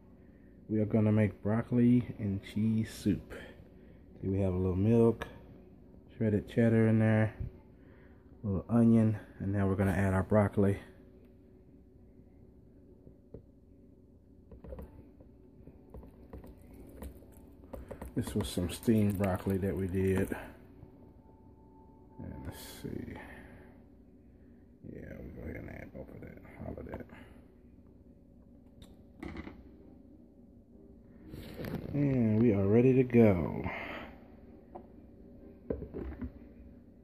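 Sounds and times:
low steady hum: 0:00.0 - 0:37.0.

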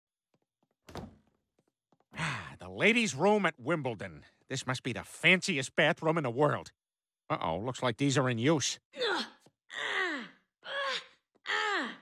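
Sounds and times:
door thunk: 0:00.9 - 0:01.3.

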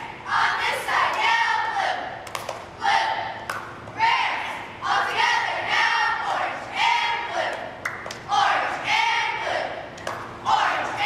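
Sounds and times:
girls chanting a cheer: 0:00.0 - 0:11.0.

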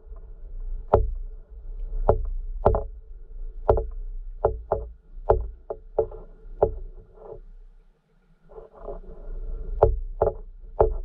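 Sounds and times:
low steady hum: 0:00.0 - 0:11.0
sharp underwater clicks and knocks: 0:00.1 - 0:01.2, 0:01.8 - 0:03.0, 0:03.6 - 0:07.6, 0:09.7 - 0:11.0.

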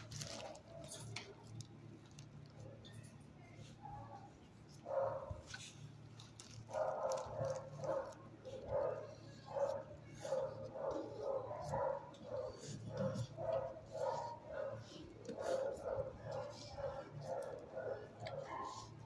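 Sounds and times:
steady low hum: 0:00.0 - 0:19.0
dog barking: 0:04.9 - 0:05.4, 0:06.7 - 0:19.0.

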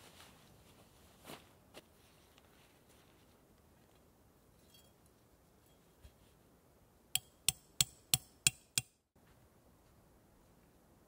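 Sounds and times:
hammer striking metal tent stake: 0:07.2 - 0:09.0.

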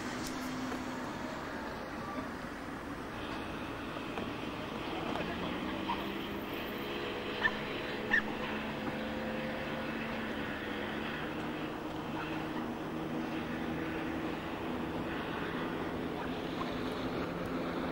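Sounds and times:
distant engine hum: 0:00.0 - 0:17.9
outdoor background noise: 0:00.0 - 0:17.9.

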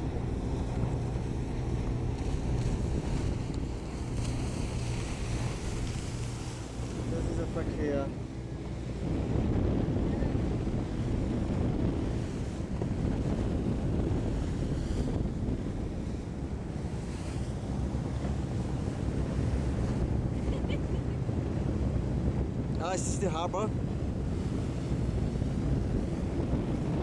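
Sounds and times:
boat engine rumble: 0:00.0 - 0:27.0
water rushing along hull: 0:00.0 - 0:27.0
wind buffeting microphone: 0:00.0 - 0:27.0.

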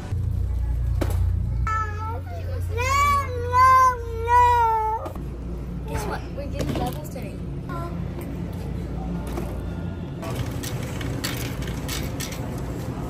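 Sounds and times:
child whining cries: 0:01.7 - 0:05.2.

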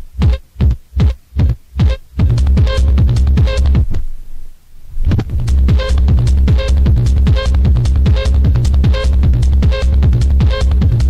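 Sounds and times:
techno kick drum: 0:00.2 - 0:03.9, 0:05.1 - 0:11.0.

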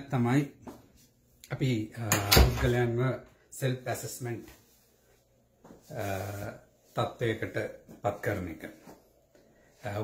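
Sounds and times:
man talking: 0:00.0 - 0:00.6, 0:01.4 - 0:04.6, 0:05.8 - 0:09.0, 0:09.8 - 0:10.0.

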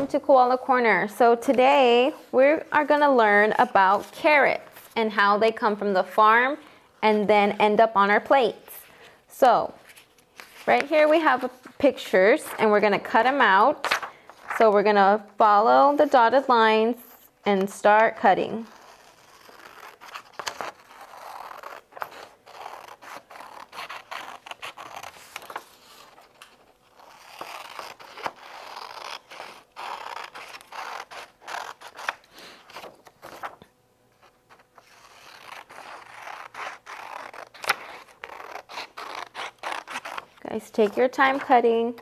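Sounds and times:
paper rustling: 0:09.8 - 0:13.2, 0:13.8 - 0:14.8, 0:19.2 - 0:41.6
scissors snipping paper: 0:18.7 - 0:33.6, 0:34.6 - 0:41.6.

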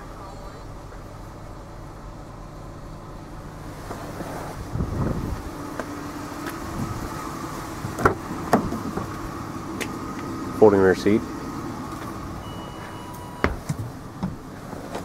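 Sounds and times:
low hum inside car: 0:00.0 - 0:15.0
car door clicks: 0:13.1 - 0:15.0.

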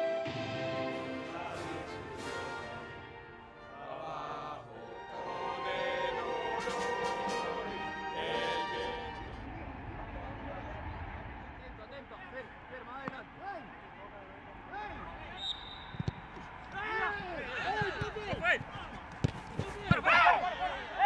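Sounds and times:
orchestra and voices anthem: 0:00.0 - 0:11.0
empty stadium ambience: 0:00.0 - 0:21.0
players shouting: 0:03.7 - 0:21.0.

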